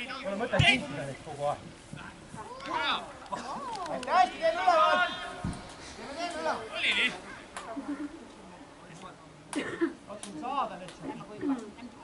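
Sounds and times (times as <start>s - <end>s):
footballers shouting calls: 0.0s - 1.3s, 2.0s - 7.9s.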